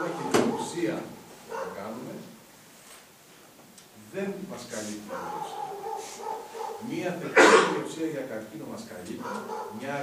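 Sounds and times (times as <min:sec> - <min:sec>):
man speaking: 0:00.0 - 0:02.4, 0:04.0 - 0:05.7, 0:06.8 - 0:10.0.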